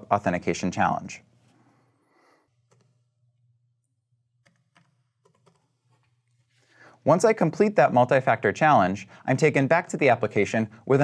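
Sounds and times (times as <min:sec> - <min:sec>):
computer keyboard keystrokes: 0:04.4 - 0:06.1.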